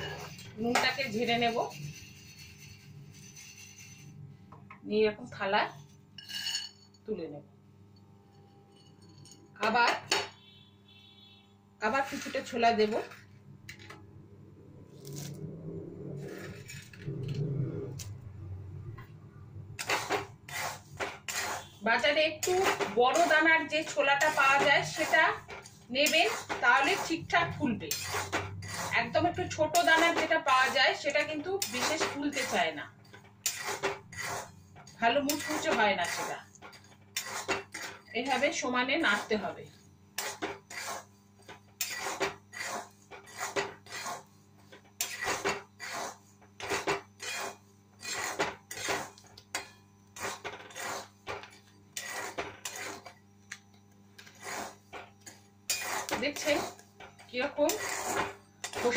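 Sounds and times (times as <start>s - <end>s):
metal spatula scraping in wok: 0.0s - 4.3s, 6.2s - 6.9s, 11.9s - 14.0s, 14.9s - 18.2s, 19.7s - 53.2s, 54.2s - 58.9s.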